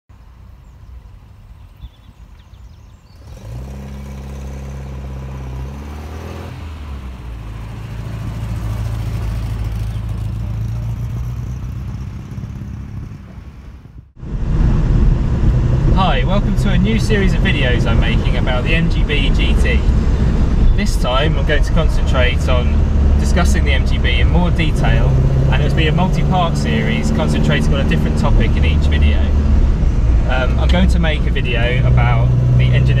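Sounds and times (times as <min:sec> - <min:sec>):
engine heard inside car cabin: 0:14.2 - 0:33.0.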